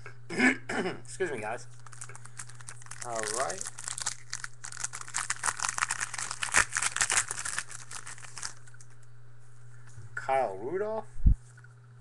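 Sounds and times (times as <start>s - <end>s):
foil wrapper crinkling: 1.7s - 9.0s.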